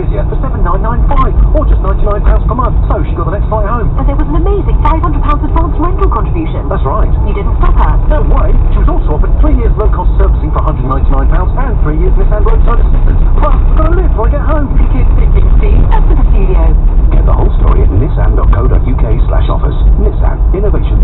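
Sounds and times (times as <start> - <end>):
engine and tyres rumbling: 0.0 - 21.0
voice from car radio: 0.0 - 21.0.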